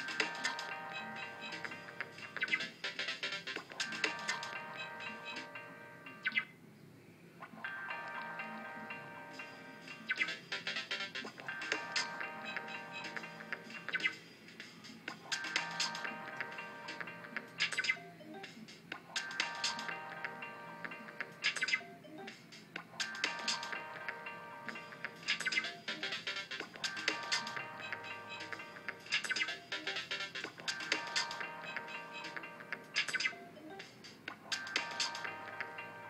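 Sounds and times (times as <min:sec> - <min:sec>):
loop-based electronic music: 0:00.0 - 0:06.5, 0:07.4 - 0:36.0.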